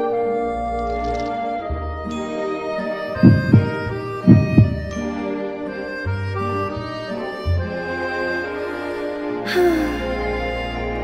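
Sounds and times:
soft instrumental music: 0:00.0 - 0:11.0
heartbeat thumps: 0:03.2 - 0:05.0.

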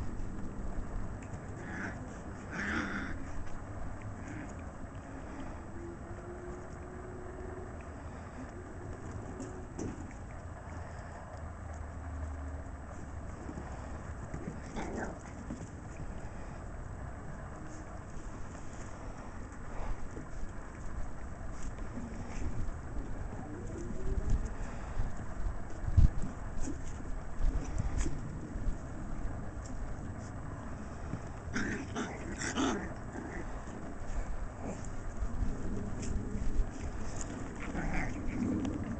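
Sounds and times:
steady low rumble: 0:00.0 - 0:38.9.

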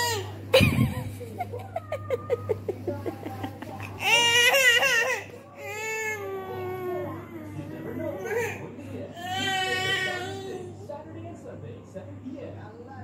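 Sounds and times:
toddler crying: 0:04.0 - 0:08.6, 0:09.2 - 0:10.7.

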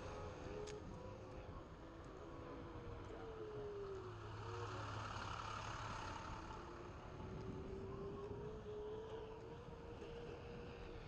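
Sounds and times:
street traffic: 0:00.0 - 0:09.2.

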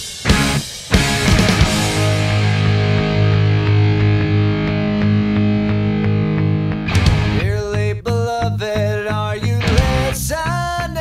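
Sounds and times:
sharp drum hit: 0:00.0 - 0:03.5, 0:06.9 - 0:07.4
distorted electric guitar chords: 0:00.0 - 0:10.6.

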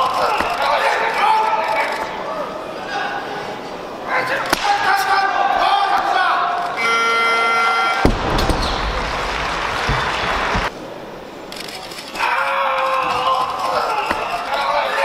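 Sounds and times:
voices shouting in a hall: 0:00.0 - 0:10.7, 0:12.1 - 0:15.0
barbell crashing onto platform: 0:08.0 - 0:10.7.

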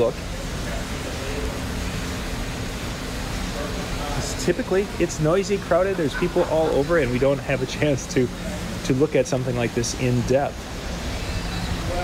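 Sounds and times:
ventilation hiss and hum: 0:00.0 - 0:12.0.

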